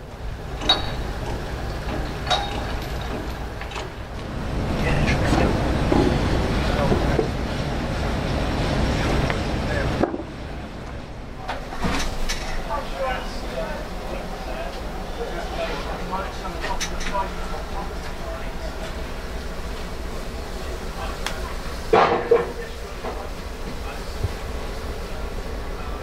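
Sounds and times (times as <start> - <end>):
steady low rumble: 0.0 - 22.0
indistinct background voices: 2.5 - 26.0.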